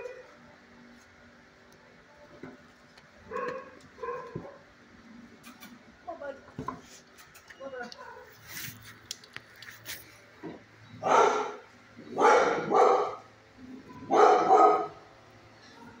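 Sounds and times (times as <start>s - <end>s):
dog barking: 3.3s - 4.6s, 8.0s - 8.3s, 11.0s - 13.3s, 14.0s - 15.0s.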